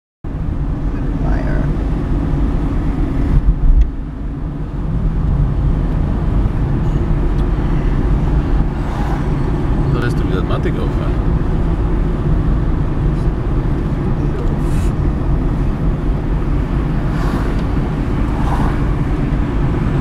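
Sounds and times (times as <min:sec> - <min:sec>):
car engine and road rumble: 0:00.2 - 0:20.0.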